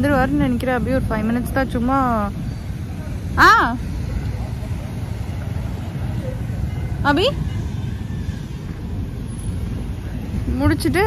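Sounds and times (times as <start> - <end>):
wind buffeting microphone: 0.0 - 11.0
woman speaking: 7.0 - 7.4, 10.5 - 11.0.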